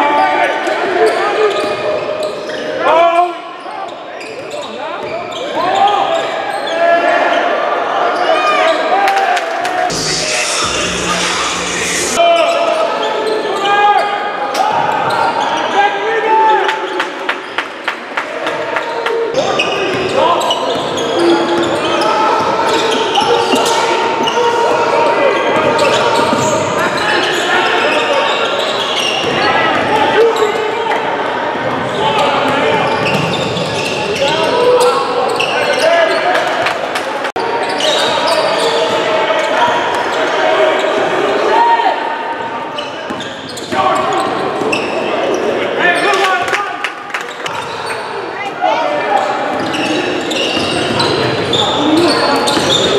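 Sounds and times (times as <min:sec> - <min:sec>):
chatter of many voices: 0:00.0 - 0:52.9
shoe squeaks: 0:49.6 - 0:52.9.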